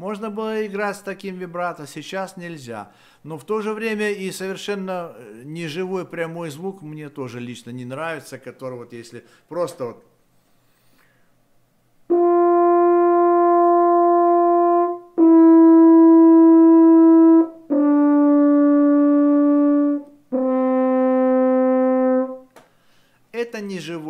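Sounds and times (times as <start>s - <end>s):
french horn long notes: 12.1s - 22.5s.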